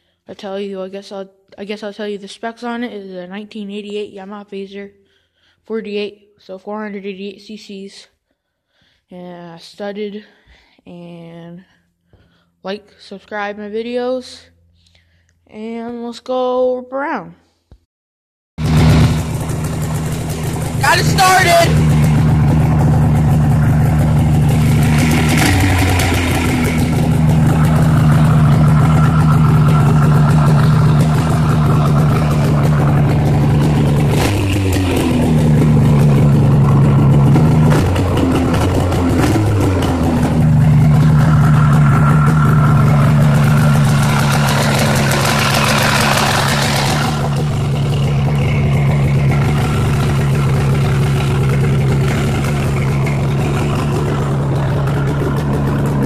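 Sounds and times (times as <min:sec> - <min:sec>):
snowmobile engine idling: 0:18.6 - 0:56.0.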